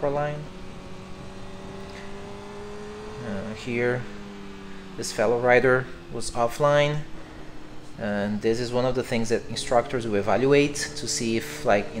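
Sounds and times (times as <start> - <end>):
motorcycle engine running: 0.0 - 12.0
wind and road noise: 0.0 - 12.0.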